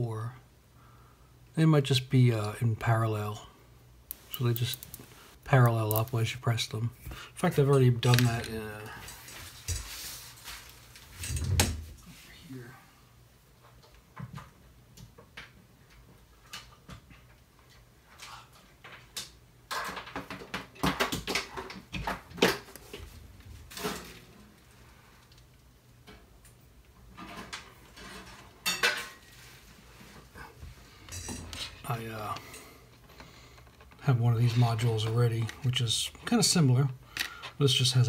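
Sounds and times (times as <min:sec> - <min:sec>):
hard objects clinking and clattering: 0:04.1 - 0:05.1.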